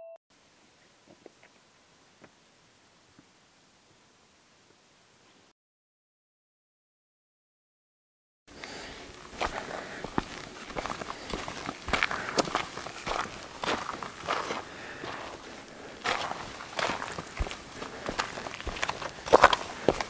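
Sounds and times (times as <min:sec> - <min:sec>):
footsteps on rock: 0:08.7 - 0:20.0.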